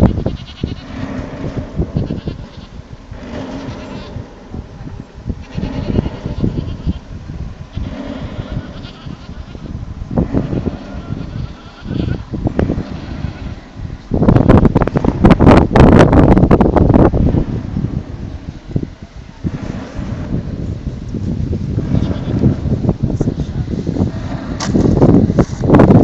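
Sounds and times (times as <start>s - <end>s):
quavering bleat-like animal calls: 0.0s - 1.2s, 1.9s - 4.2s, 5.4s - 7.1s, 7.7s - 13.7s, 21.8s - 22.6s
wind gust on microphone: 0.0s - 26.0s.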